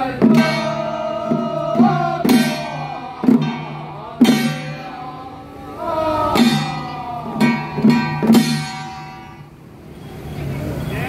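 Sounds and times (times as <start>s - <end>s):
traffic: 0.0s - 11.0s
voices: 0.0s - 11.0s
gong ringing: 0.2s - 5.3s.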